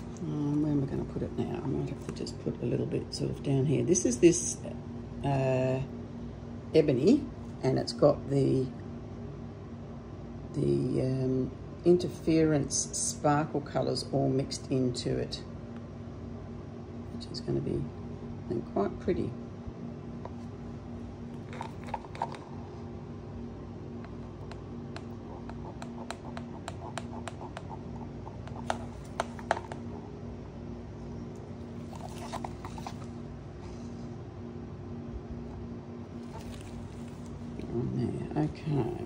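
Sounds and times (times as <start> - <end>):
low hum: 14.7 - 39.0
stick scraping plastic cup: 21.4 - 22.6, 24.5 - 29.9.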